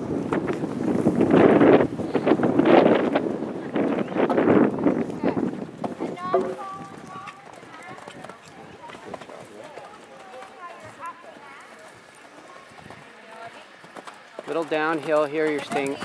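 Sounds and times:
horse hoofbeats on sand: 4.3s - 16.0s.

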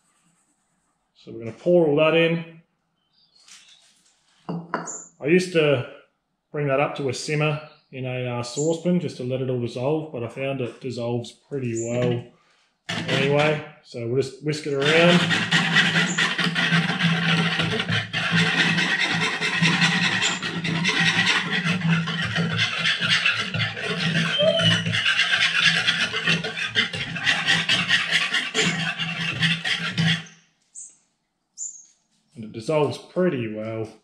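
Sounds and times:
whisk scraping in container: 12.9s - 13.6s, 14.7s - 30.3s.

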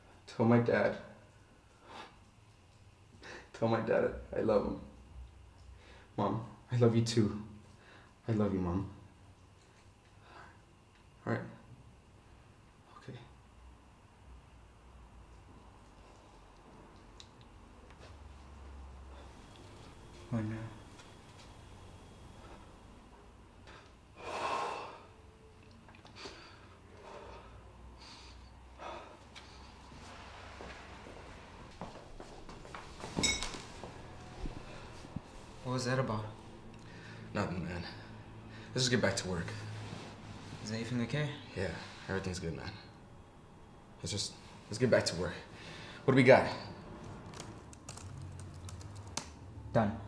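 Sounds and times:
low steady hum: 0.0s - 50.0s
man breathing heavily: 23.6s - 25.3s, 26.1s - 30.6s, 34.4s - 35.3s, 36.8s - 38.8s
laptop keyboard typing: 47.2s - 49.3s.

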